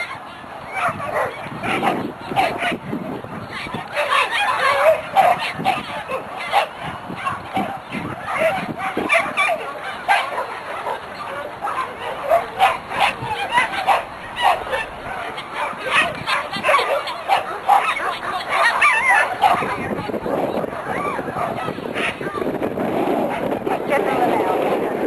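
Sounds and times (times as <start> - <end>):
dogs barking and yipping: 0.0 - 24.2
people's voices: 0.0 - 25.0.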